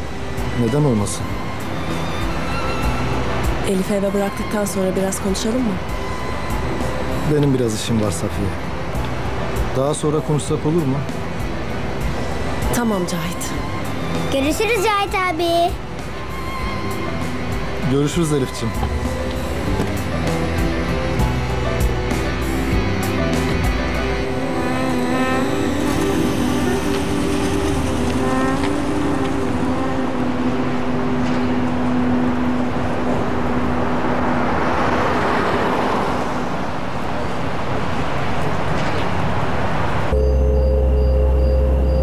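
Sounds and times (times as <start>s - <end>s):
background music: 0.0s - 42.0s
car pulling away: 15.8s - 42.0s.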